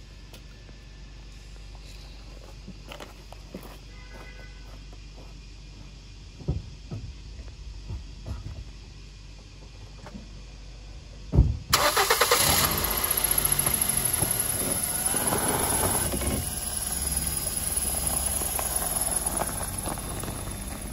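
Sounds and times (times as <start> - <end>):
thump: 6.4 - 7.1, 11.3 - 11.7
high engine whine: 9.0 - 20.9
car engine starting and running: 11.7 - 20.9.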